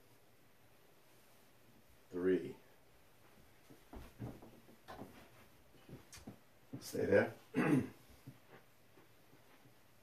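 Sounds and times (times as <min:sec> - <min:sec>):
footsteps shuffling: 0:03.1 - 0:07.2, 0:08.0 - 0:10.0
soft thuds of bodies: 0:03.2 - 0:10.0.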